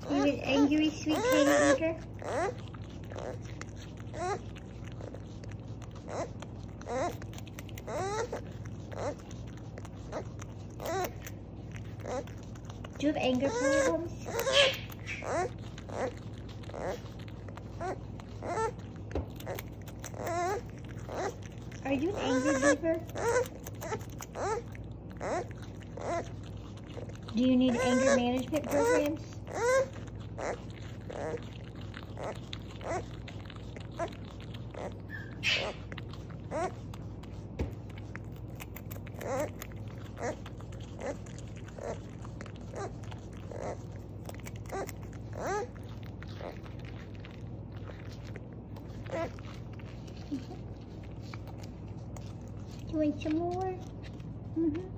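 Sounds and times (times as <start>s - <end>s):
young beaver whiny cries: 0.0s - 3.5s, 6.1s - 9.3s, 10.8s - 11.3s, 13.2s - 17.0s, 17.8s - 26.4s, 27.6s - 31.5s, 34.8s - 35.9s
faint chewing clicks: 0.0s - 54.9s.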